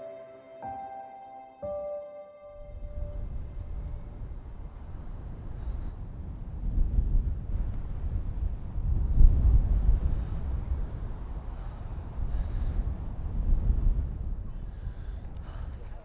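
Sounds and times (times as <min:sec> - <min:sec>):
wind buffeting microphone: 0:02.6 - 0:16.0.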